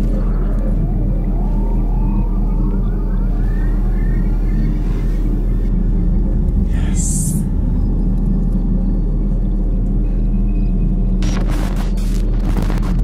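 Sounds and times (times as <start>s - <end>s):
eerie gliding tones: 0.0s - 11.2s
loud low drone: 0.0s - 12.9s.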